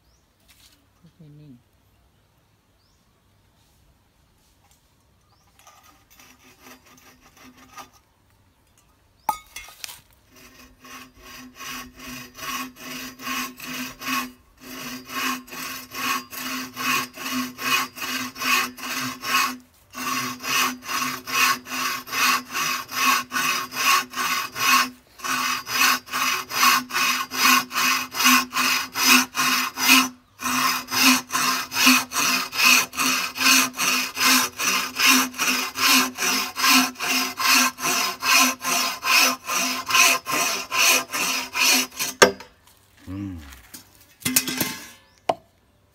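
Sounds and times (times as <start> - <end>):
bow saw cutting bamboo: 5.6 - 8.0, 9.8 - 42.5
steady ring: 8.8 - 9.7.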